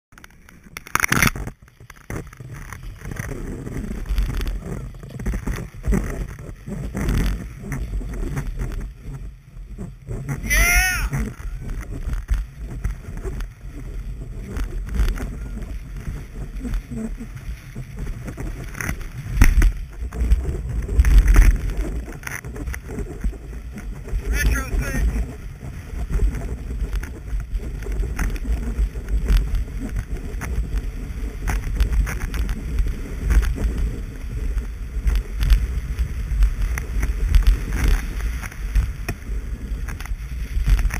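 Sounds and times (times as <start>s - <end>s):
skis sliding over snow: 0.1s - 40.9s
uneven low rumble: 0.1s - 40.9s
wind buffeting microphone: 0.2s - 40.9s.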